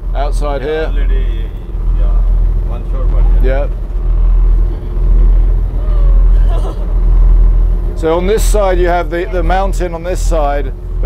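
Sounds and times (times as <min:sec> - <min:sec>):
boat engine drone: 0:00.0 - 0:11.0.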